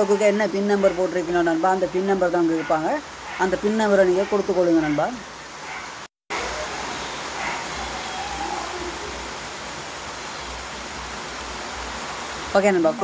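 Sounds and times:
steady background hiss: 0.0s - 13.0s.

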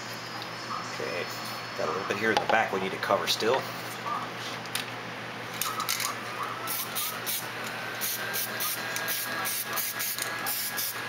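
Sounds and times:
heat gun fan whining: 4.6s - 11.0s.

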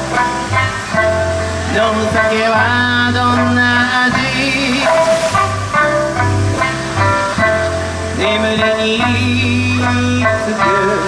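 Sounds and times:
live band pop music: 0.0s - 11.0s.

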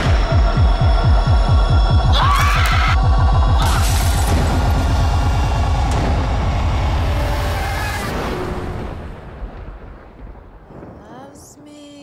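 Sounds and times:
deep throbbing low rumble: 0.0s - 11.0s.

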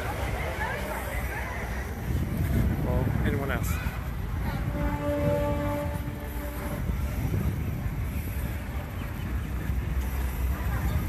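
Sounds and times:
low outdoor rumble: 0.0s - 11.0s
horn steady note: 4.6s - 7.5s.

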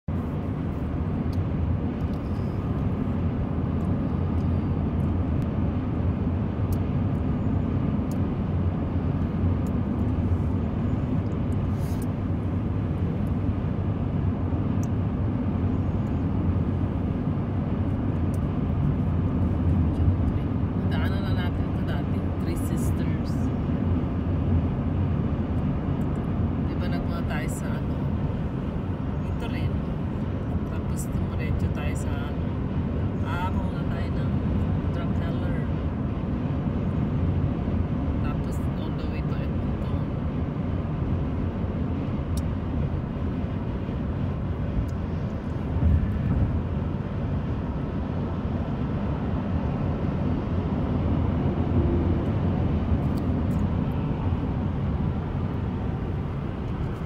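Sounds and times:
car cabin road and engine rumble: 0.1s - 57.0s.

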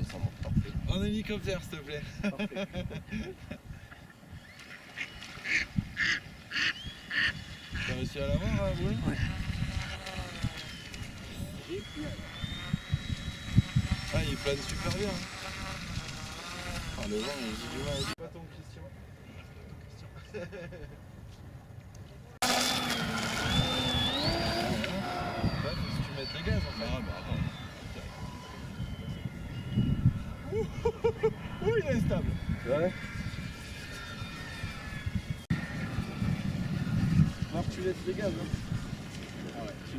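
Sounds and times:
wind rumble on microphone: 0.0s - 4.6s, 5.2s - 18.2s, 23.2s - 39.9s
model plane motor whine: 4.3s - 18.2s, 22.4s - 39.9s.

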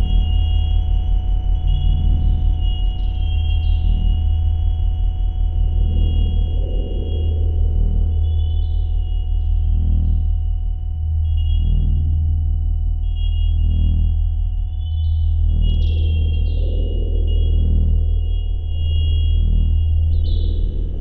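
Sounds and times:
deep electronic drone: 0.0s - 21.0s
pulsing electronic tone: 0.0s - 21.0s.

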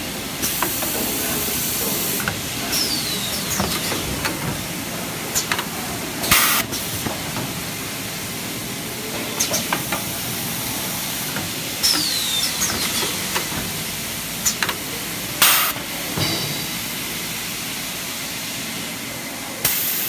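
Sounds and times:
packaging machine running: 0.0s - 17.7s
pneumatic valve air hiss: 0.4s - 4.4s, 5.3s - 7.1s, 9.4s - 18.6s, 19.6s - 20.0s.

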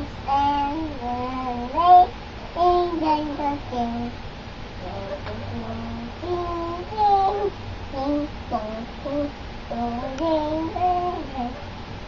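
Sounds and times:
boy reciting in sing-song chant: 0.0s - 4.2s, 4.8s - 11.7s.

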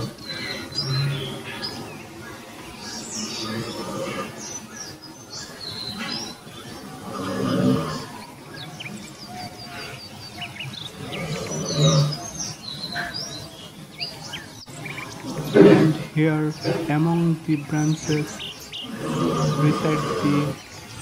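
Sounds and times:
low rough animal calls: 0.0s - 20.6s
birds chirping: 0.0s - 21.0s.

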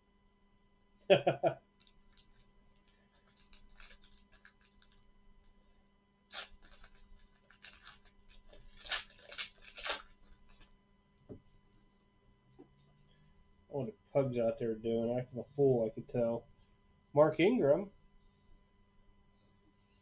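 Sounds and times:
foil wrapper ripping: 1.8s - 5.1s, 6.2s - 10.7s
foil wrapper crinkling: 1.8s - 5.5s, 6.2s - 10.8s.

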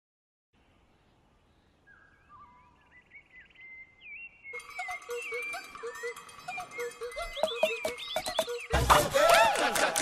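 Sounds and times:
jungle bird calls: 1.8s - 9.6s.

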